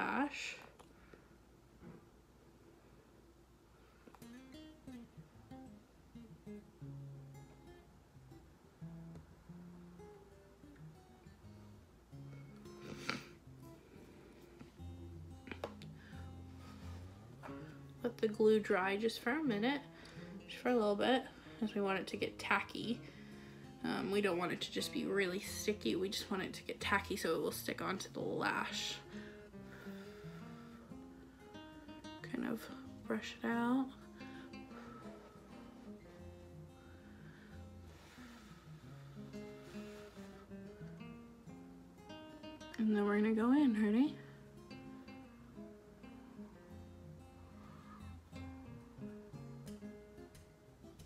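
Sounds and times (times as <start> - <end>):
plucked string music: 4.2 - 19.0, 44.2 - 51.0.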